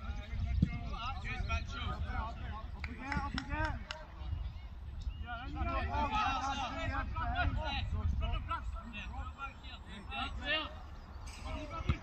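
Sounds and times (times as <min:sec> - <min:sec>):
wind rumble on microphone: 0:00.0 - 0:12.0
distant shouting voices: 0:05.2 - 0:12.0.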